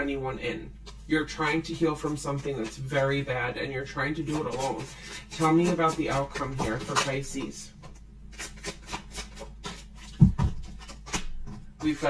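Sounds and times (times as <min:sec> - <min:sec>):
cards shuffling: 0:04.2 - 0:12.0.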